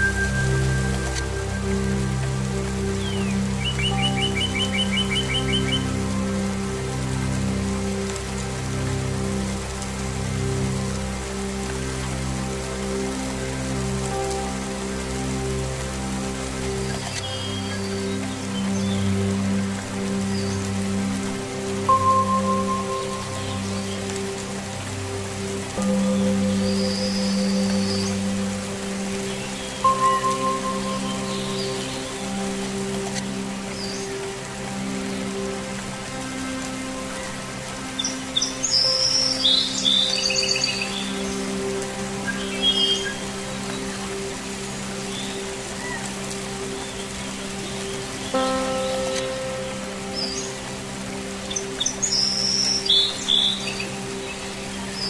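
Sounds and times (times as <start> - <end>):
ambient string and singing bowl music: 0.0 - 55.0
steady rain: 0.0 - 55.0.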